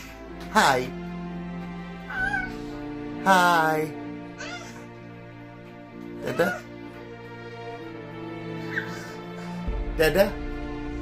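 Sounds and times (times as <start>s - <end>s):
background music: 0.0s - 11.0s
cat meowing: 2.1s - 2.6s, 4.4s - 4.9s, 6.2s - 6.7s.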